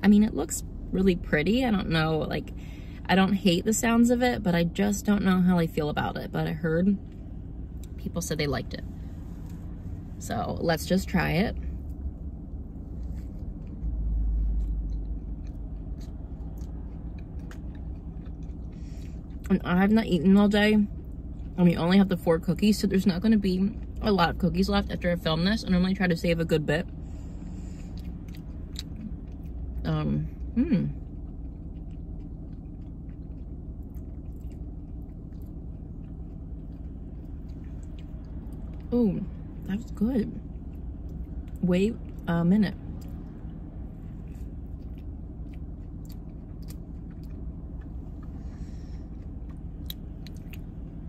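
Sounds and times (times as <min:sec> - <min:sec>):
car interior hum: 0:00.0 - 0:51.0
low rumble: 0:00.0 - 0:51.0
cookie being chewed with crunches: 0:12.8 - 0:24.1, 0:27.2 - 0:51.0.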